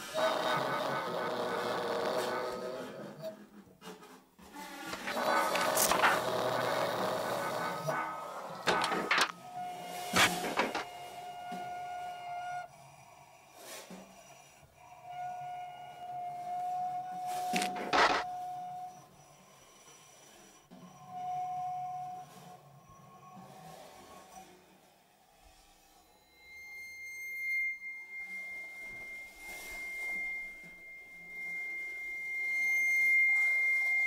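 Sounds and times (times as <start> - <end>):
drum scrapes: 0.0 - 12.6, 16.4 - 18.8, 25.5 - 34.0
steady pitched tone: 26.0 - 34.0.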